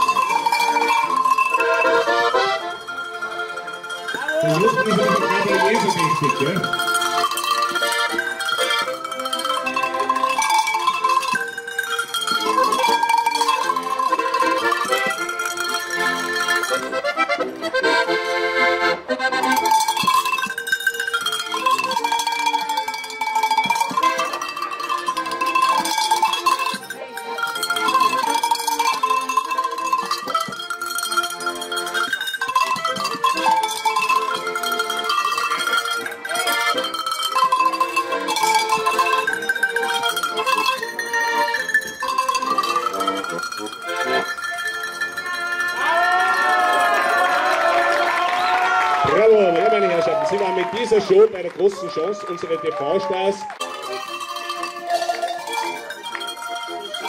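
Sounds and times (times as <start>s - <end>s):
button accordion: 0.0s - 45.7s
tuned cowbells ringing melody: 0.0s - 51.5s, 53.4s - 57.0s.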